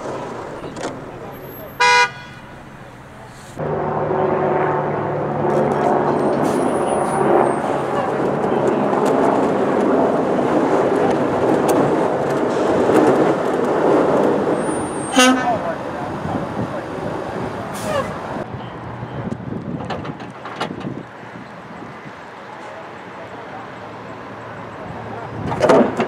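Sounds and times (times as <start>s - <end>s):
truck engine running: 0.0s - 18.4s.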